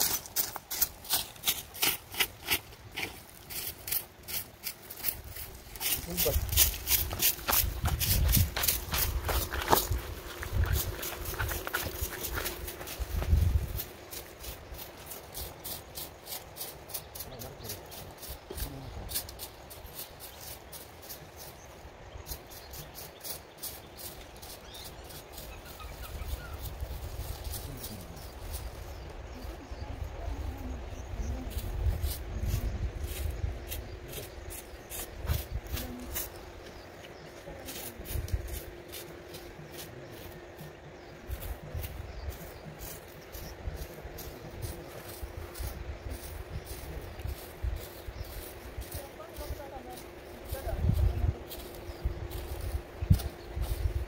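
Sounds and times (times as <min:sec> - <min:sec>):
hand tools ticking and scraping: 0:00.0 - 0:29.2, 0:31.6 - 0:54.0
wind buffeting microphone: 0:05.1 - 0:15.6, 0:24.7 - 0:54.0.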